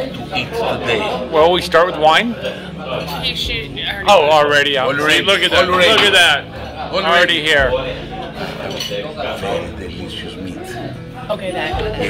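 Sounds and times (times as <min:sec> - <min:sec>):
voices chattering: 0:00.0 - 0:12.0
dishes and cutlery clinking: 0:02.4 - 0:03.5, 0:05.6 - 0:06.9, 0:08.1 - 0:09.4.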